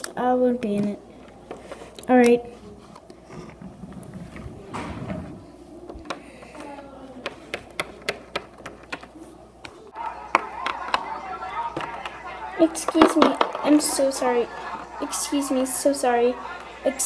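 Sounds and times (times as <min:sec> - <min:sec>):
plastic figurines clicking on wood: 0:06.0 - 0:14.1.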